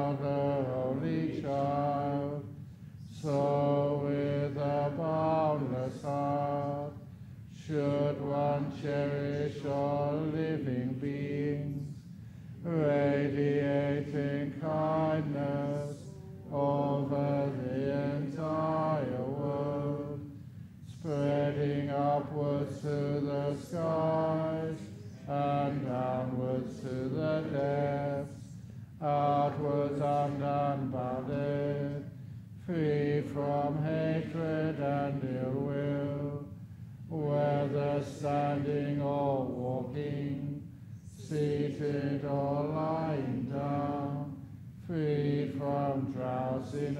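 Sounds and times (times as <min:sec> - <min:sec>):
man chanting: 0:00.0 - 0:02.4, 0:03.1 - 0:11.9, 0:12.6 - 0:20.2, 0:20.9 - 0:32.0, 0:32.7 - 0:36.4, 0:37.1 - 0:40.6.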